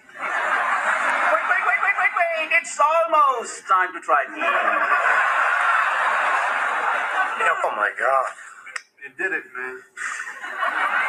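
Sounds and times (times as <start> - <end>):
sitcom laugh track: 0.0 - 2.6, 4.2 - 8.8, 10.0 - 11.0.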